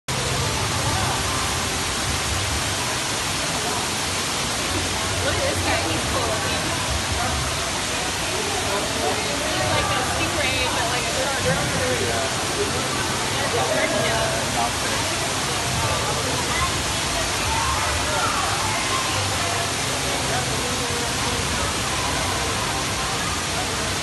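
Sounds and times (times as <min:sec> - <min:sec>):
faint indistinct voices: 0:00.1 - 0:24.0
rushing background noise: 0:00.1 - 0:24.0.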